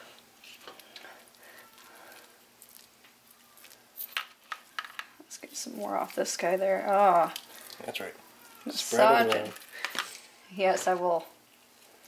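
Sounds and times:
wet squishing of oily meat: 0.5s - 4.0s, 6.8s - 8.8s.

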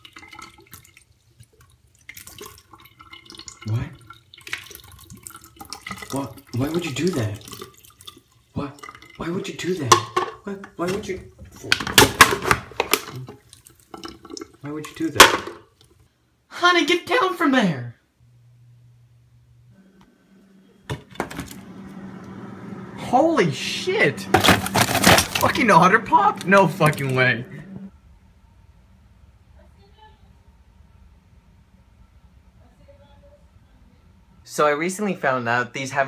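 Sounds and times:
soda splashing into a sink: 0.0s - 10.2s
refrigerator low hum: 17.0s - 36.0s
freezer door clicks and clatters: 24.4s - 25.6s.

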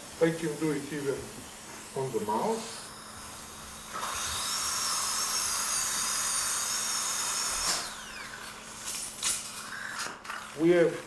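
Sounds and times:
dental drill whining: 0.7s - 11.0s.

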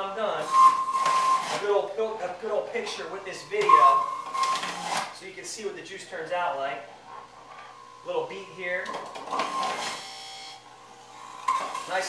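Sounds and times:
electric juicer motor whining: 4.1s - 5.2s, 9.1s - 12.0s.

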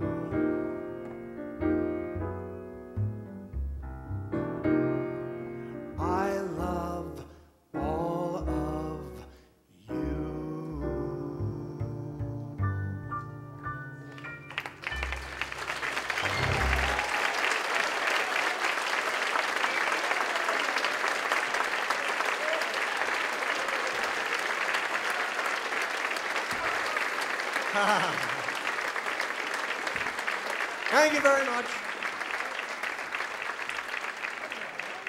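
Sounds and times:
audience applauding: 14.1s - 35.0s.

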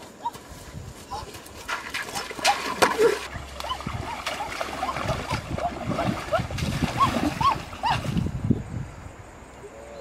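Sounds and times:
water splashing in a stream: 1.6s - 8.4s.

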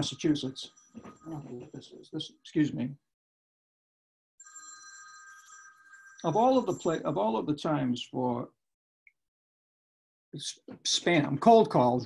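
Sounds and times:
telephone ringing: 4.4s - 7.0s.

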